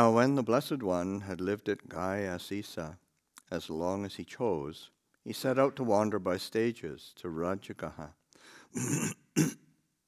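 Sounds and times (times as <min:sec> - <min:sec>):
man clearing throat: 0:08.8 - 0:09.7
man coughing: 0:08.8 - 0:09.7.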